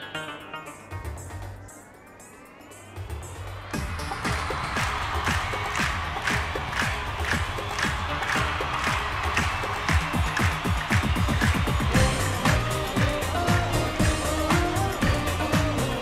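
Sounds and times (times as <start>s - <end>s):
instrumental pop music: 0.0s - 2.3s, 2.9s - 16.0s.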